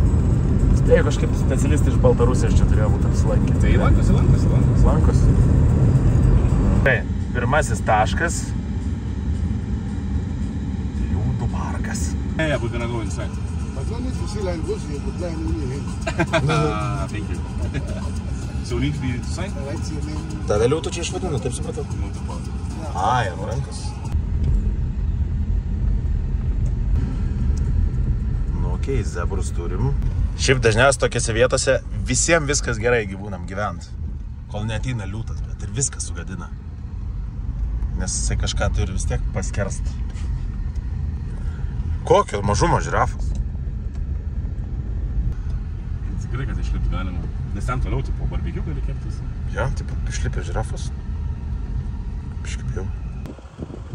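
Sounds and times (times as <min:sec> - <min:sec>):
car engine rumble and road noise: 0:00.0 - 0:53.9
people talking: 0:00.7 - 0:05.3, 0:06.9 - 0:08.6, 0:11.0 - 0:24.2, 0:28.5 - 0:33.9, 0:34.5 - 0:36.5, 0:38.0 - 0:40.0, 0:42.0 - 0:43.3, 0:46.0 - 0:50.9, 0:52.4 - 0:52.9.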